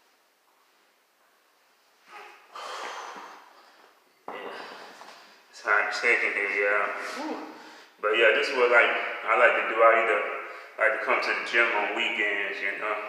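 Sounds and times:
man exhaling whew: 2.1s - 3.7s
man breathing hard: 2.5s - 5.5s, 7.4s - 8.0s.

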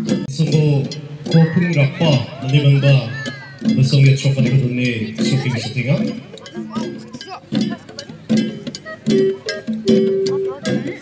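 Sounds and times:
sharp drum strikes: 0.0s - 11.0s
voices: 0.0s - 11.0s.

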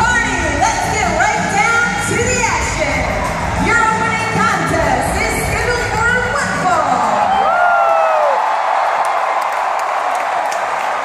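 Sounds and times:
crowd cheering and screaming: 6.8s - 11.0s.

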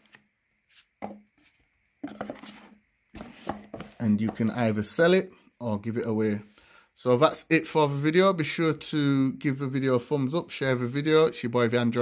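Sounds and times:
cardboard and plastic scrapes and taps: 0.0s - 4.6s
box lid rubbing: 0.7s - 4.4s.

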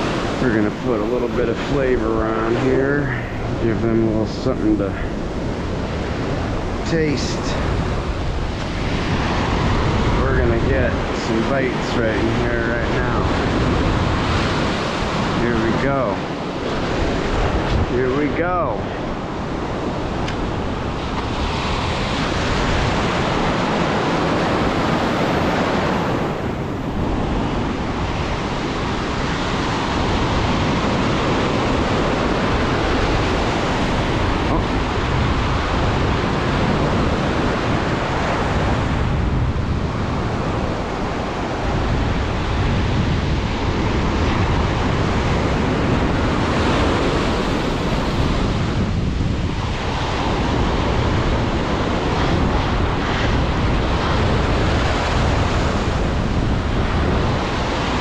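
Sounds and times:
ocean surf breaking: 0.0s - 58.0s
wind buffeting microphone: 0.0s - 58.0s.

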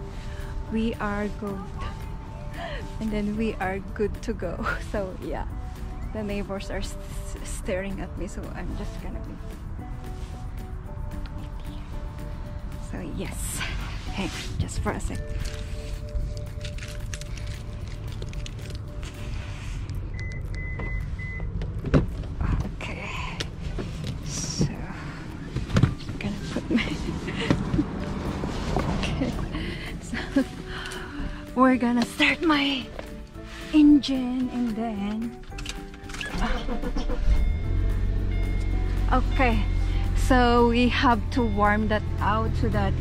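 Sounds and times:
car engine starting and idling: 0.0s - 43.0s
music: 0.0s - 43.0s.

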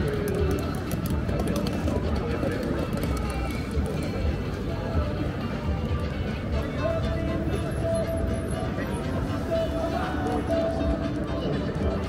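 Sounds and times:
many people talking: 0.0s - 12.0s.

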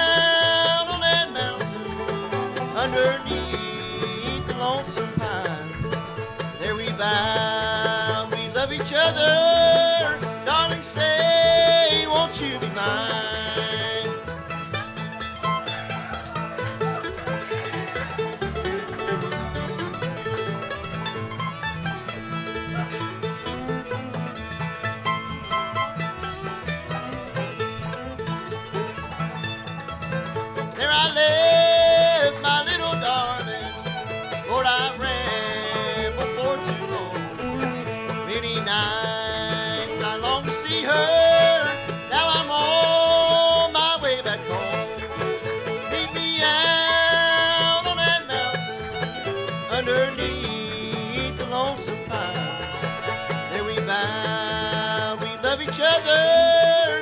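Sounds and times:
man singing lead vocal: 0.0s - 14.2s, 30.7s - 33.7s, 34.4s - 37.4s, 38.2s - 44.8s, 45.7s - 48.7s, 49.6s - 57.0s
bluegrass band playing: 0.0s - 57.0s.

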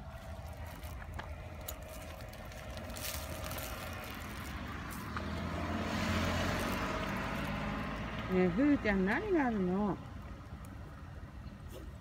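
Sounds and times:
dog digging in dry soil: 0.0s - 5.1s.

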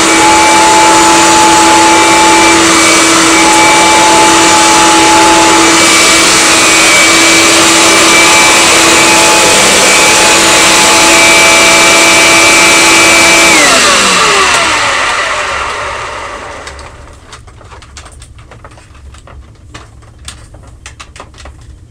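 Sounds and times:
vacuum motor spinning down: 0.0s - 17.2s
upright vacuum running: 0.0s - 18.2s.

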